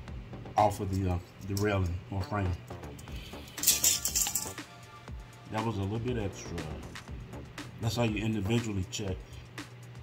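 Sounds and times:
background music: 0.0 - 10.0
tape measure retracting rattle: 3.5 - 4.6.

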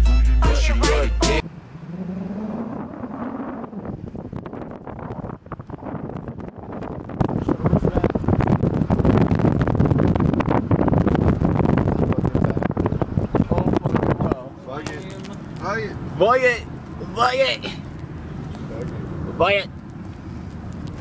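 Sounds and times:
road noise: 0.5 - 21.0
wind buffeting microphone: 1.8 - 15.8.

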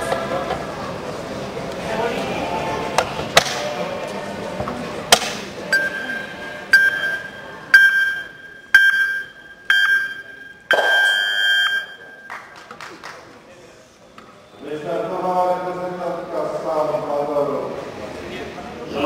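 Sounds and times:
murmur of large hall: 0.0 - 19.0
long beep: 5.7 - 12.3
short electronic beeps: 5.7 - 12.3.

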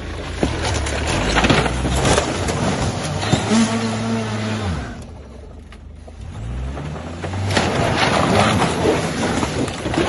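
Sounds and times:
car engine idling and revving: 0.0 - 10.0.

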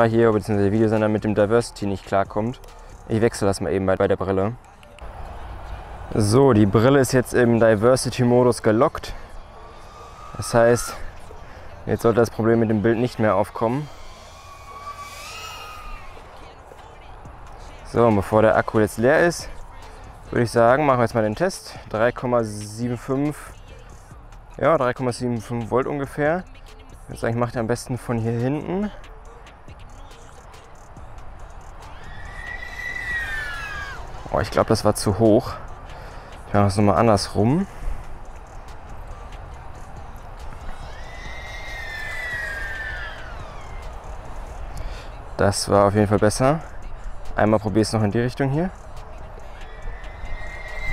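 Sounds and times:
low wind rumble: 0.0 - 50.9
drone propeller whine: 5.0 - 21.6, 28.9 - 50.9
drone motor whine: 9.1 - 16.7, 40.0 - 44.7.

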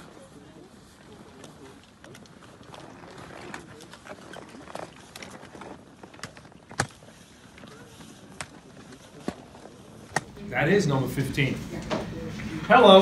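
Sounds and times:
faint indistinct voices: 0.0 - 13.0
room noise: 7.7 - 13.0.

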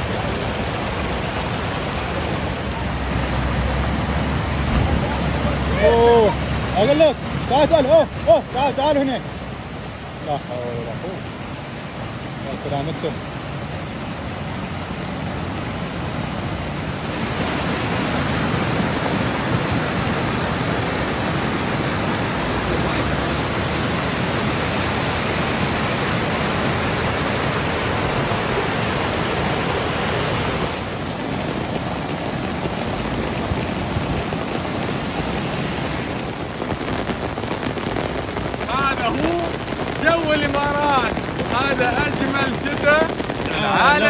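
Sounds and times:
floodwater rushing: 0.0 - 44.0.

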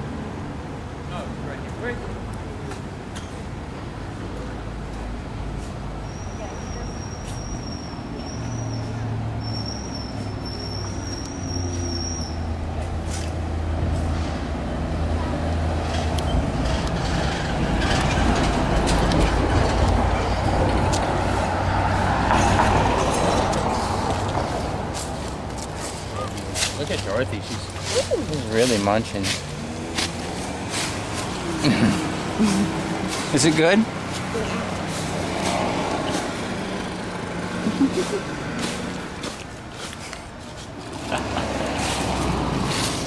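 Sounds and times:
street traffic: 0.0 - 43.0
heavy vehicle engine running: 12.6 - 43.0.

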